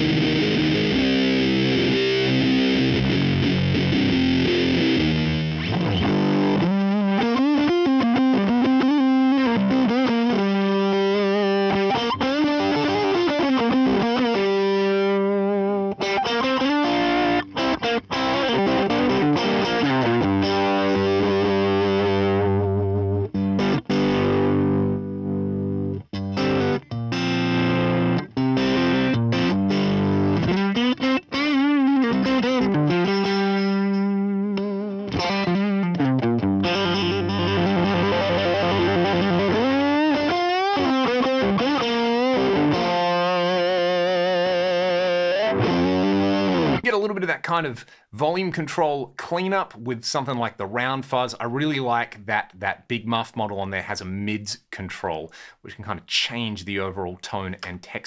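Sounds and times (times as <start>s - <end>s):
fuzzy electric guitar riffs: 0.0s - 48.1s.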